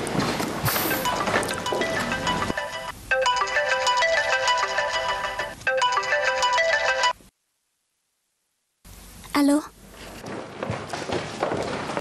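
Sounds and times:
phone ringtone melody: 0:00.7 - 0:07.2.

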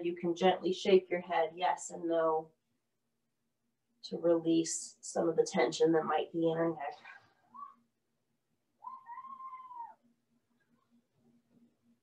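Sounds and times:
cat meowing: 0:08.8 - 0:10.0.

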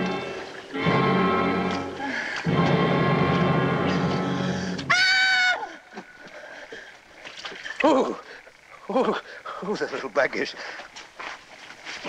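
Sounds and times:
woman screaming: 0:04.9 - 0:05.8.

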